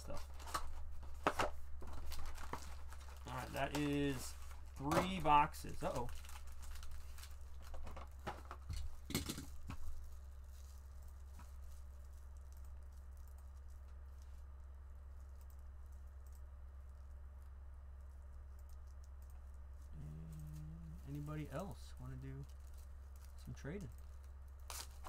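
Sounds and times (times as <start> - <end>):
foil packs crinkling: 0.0 - 14.4, 19.4 - 25.0
steady low hum: 0.0 - 25.0.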